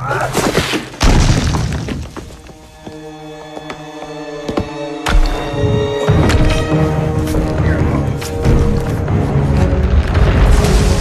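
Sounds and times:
orchestral film music: 2.1s - 11.0s
deep booming effects: 9.8s - 11.0s.

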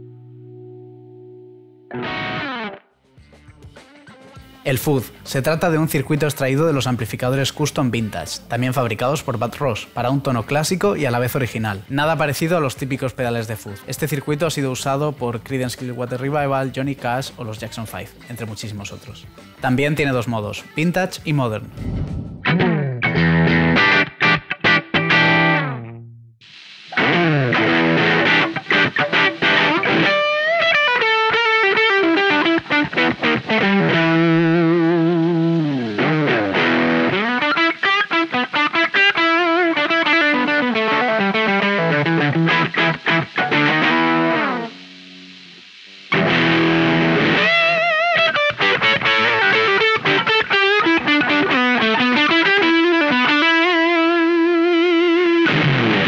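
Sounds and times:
distorted electric guitar: 0.0s - 3.8s, 4.4s - 56.0s.

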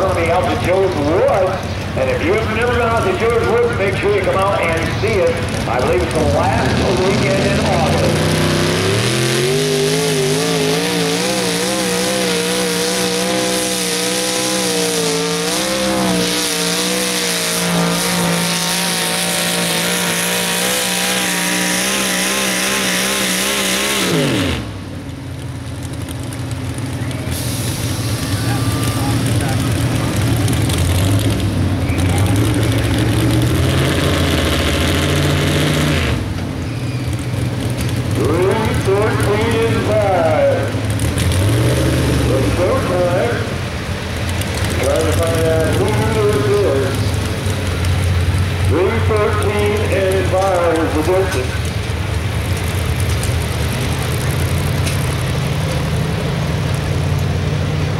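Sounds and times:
tractor engine revving: 0.0s - 57.9s.

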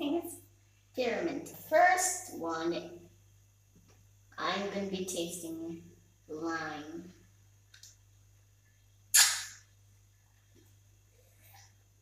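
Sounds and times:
child's sharp mouth noise: 9.1s - 9.6s.

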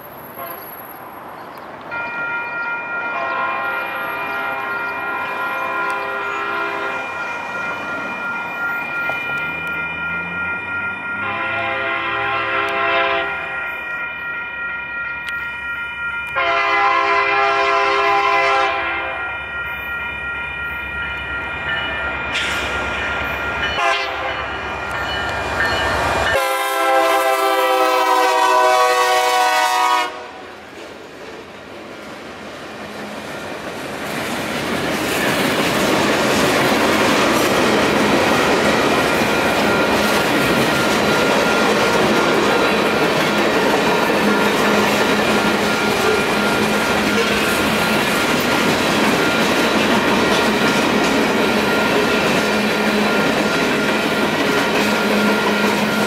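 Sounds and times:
crossing warning bell ringing: 0.0s - 30.8s, 34.6s - 56.0s
freight train wheels rumbling: 0.0s - 56.0s
locomotive horn blasts: 0.3s - 0.8s, 3.0s - 7.2s, 11.1s - 13.6s, 16.3s - 19.4s, 23.7s - 24.6s, 26.3s - 30.4s.

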